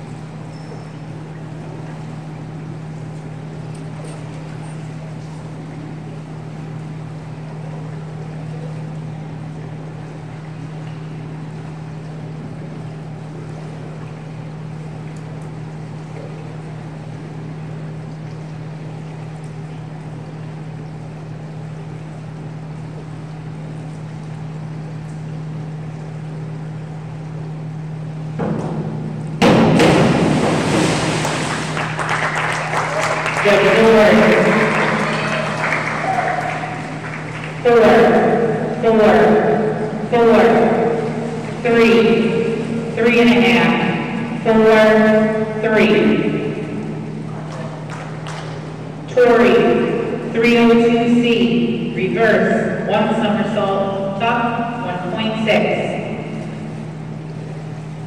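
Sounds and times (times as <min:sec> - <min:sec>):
indoor pool hall hum: 0:00.0 - 0:58.0
diver splashing into water: 0:29.4 - 0:33.4
people clapping: 0:31.2 - 0:37.7, 0:47.4 - 0:48.6.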